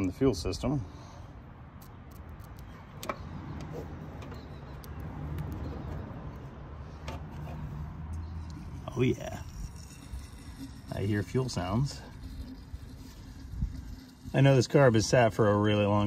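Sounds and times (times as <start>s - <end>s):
fuel pump buzzing: 0.9s - 16.0s.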